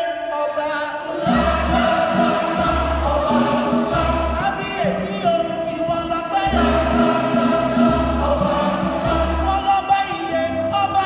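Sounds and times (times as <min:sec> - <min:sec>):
choir singing in harmony: 0:00.9 - 0:11.0.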